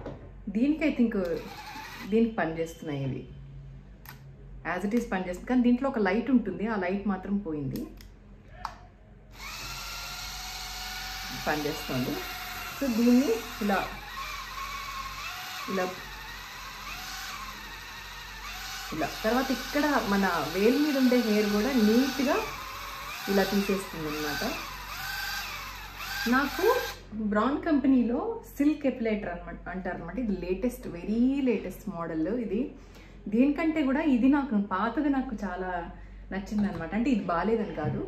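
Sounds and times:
woman speaking: 0.5s - 1.4s, 2.1s - 3.3s, 4.7s - 8.0s, 11.3s - 14.0s, 15.7s - 16.0s, 18.9s - 22.6s, 23.3s - 24.7s, 26.3s - 38.0s
epilator buzzing: 9.3s - 27.0s.

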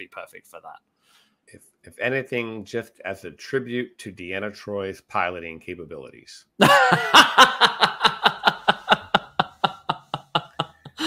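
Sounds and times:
hearty laughter: 6.6s - 11.0s.

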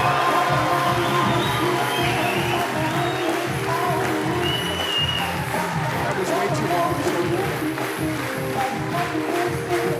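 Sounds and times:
crowd cheering: 0.0s - 9.9s
loud music playing: 0.0s - 9.9s.

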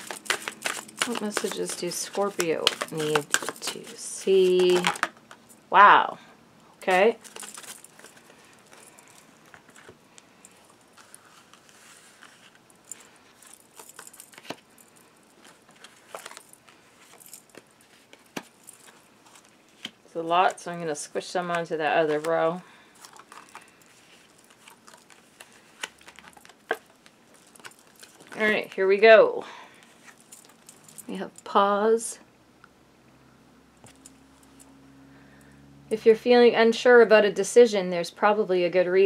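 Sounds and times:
cards being shuffled: 0.0s - 5.6s, 6.8s - 20.6s, 21.4s - 28.7s.

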